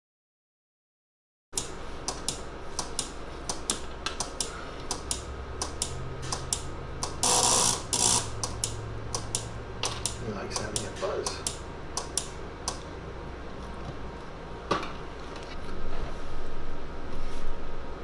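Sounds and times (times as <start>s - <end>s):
faint steady hum: 1.6s - 18.0s
short bursts of noise: 7.2s - 8.5s.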